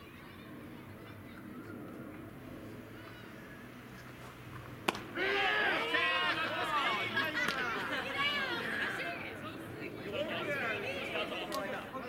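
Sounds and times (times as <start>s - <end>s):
baseball bat hitting ball: 4.8s - 5.2s
players shouting: 4.9s - 12.0s.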